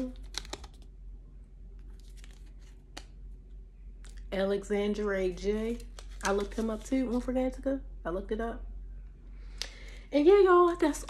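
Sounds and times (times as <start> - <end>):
packaging crinkling: 0.0 - 0.9, 1.8 - 3.1.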